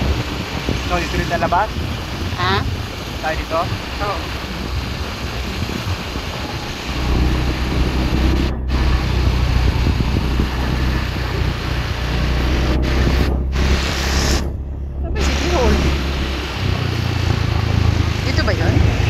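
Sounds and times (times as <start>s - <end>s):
scooter engine and road rumble: 0.0s - 19.0s
wind rushing over microphone: 0.0s - 19.0s.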